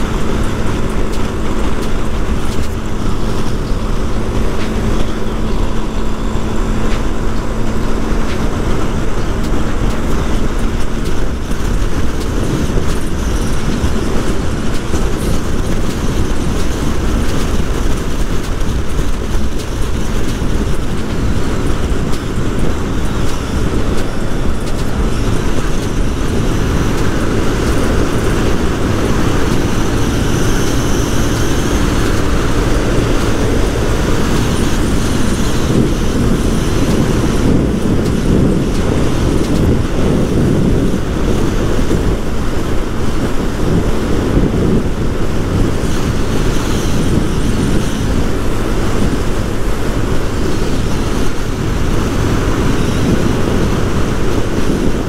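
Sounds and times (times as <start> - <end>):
motorcycle engine running: 0.0 - 55.0
wind and road noise: 0.0 - 55.0.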